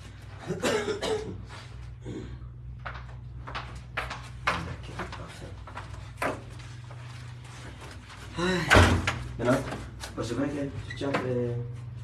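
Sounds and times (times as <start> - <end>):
steady low hum: 0.0 - 12.0
person coughing: 0.4 - 2.4.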